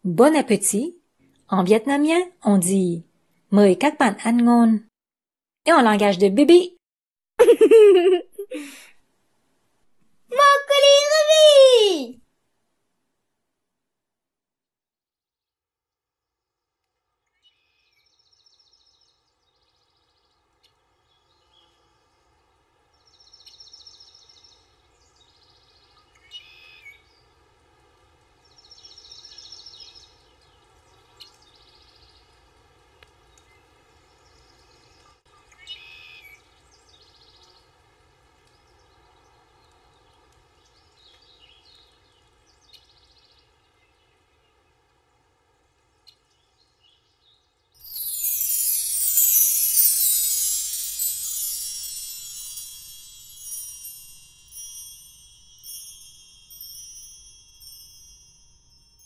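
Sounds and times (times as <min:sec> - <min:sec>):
bird chirps and trills: 0:47.8 - 0:59.0.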